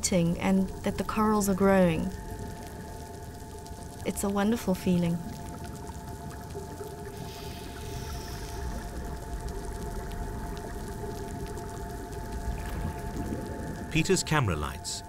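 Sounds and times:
coral reef crackling clicks and pops: 0.0 - 15.0.

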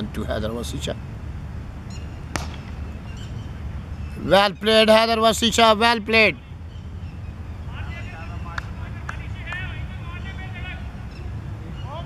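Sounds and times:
cricket bat striking ball: 2.3 - 2.8.

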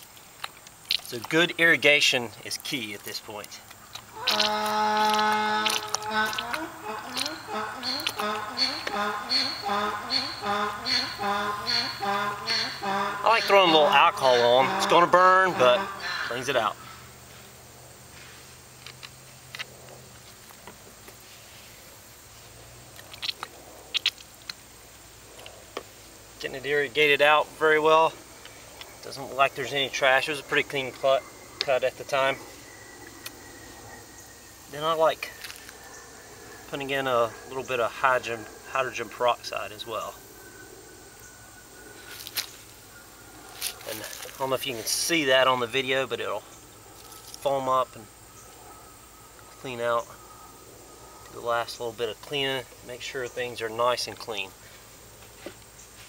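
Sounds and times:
faint steady hiss: 0.0 - 56.0
low steady hum: 0.0 - 56.0.

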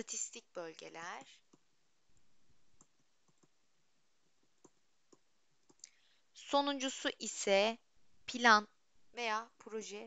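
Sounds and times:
stylus tapping on tablet screen: 2.8 - 3.6, 4.4 - 5.8.

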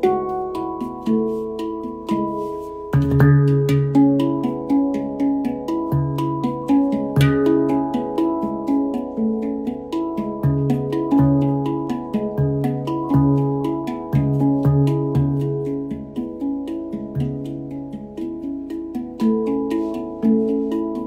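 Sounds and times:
deep handpan centre note: 0.0 - 21.0
handpan notes ringing: 0.0 - 21.0.

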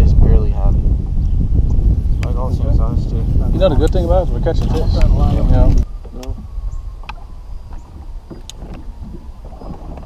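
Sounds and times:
rumble of wind and water: 0.0 - 10.0.

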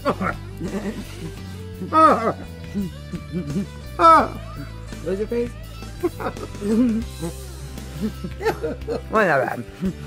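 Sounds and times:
background music with drone: 0.0 - 10.0
person crying out oh: 1.8 - 4.6.

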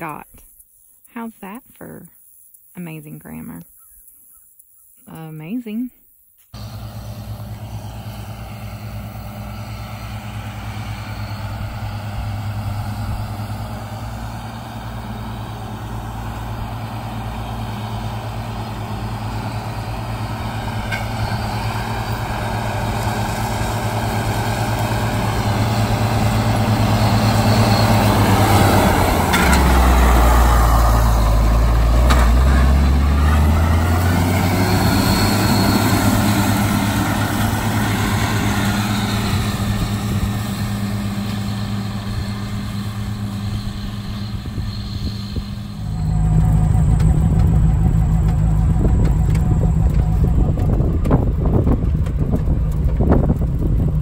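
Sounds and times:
tractor engine and mower passing: 6.5 - 54.0
vehicle engine heard from cab: 6.5 - 54.0.

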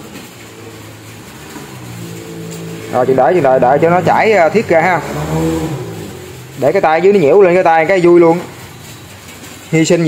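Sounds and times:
vehicle engine running: 0.0 - 9.4.

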